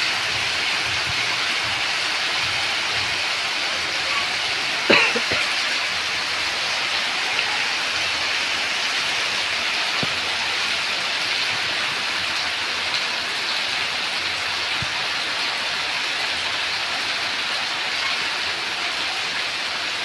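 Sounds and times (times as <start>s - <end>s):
water running off roof edge: 0.0s - 13.0s
heavy rain on wet ground: 0.0s - 20.0s.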